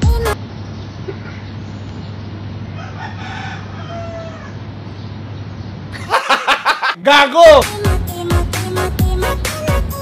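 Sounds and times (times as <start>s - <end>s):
rooster crowing faintly: 2.7s - 4.7s.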